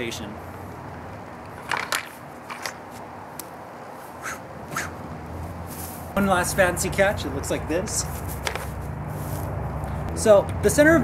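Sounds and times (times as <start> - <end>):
low background hum: 0.0 - 11.0
soft high swish: 4.0 - 5.0.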